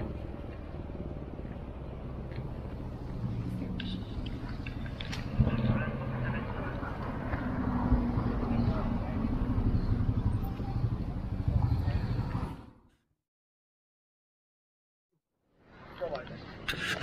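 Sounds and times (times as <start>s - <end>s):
motor vehicle running: 0.0s - 12.8s
indistinct voices: 3.3s - 12.7s.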